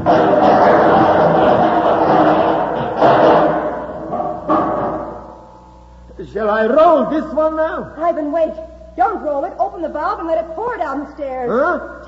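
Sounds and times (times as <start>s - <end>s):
container tumbling down stairs: 0.0s - 5.4s.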